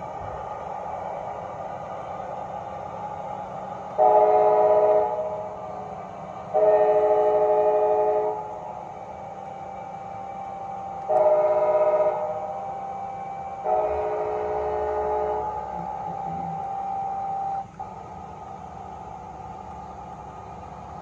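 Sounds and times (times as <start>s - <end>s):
steady mechanical hum: 0.0s - 21.0s
model train horn blasts: 4.0s - 5.6s, 6.5s - 8.6s, 11.0s - 17.7s.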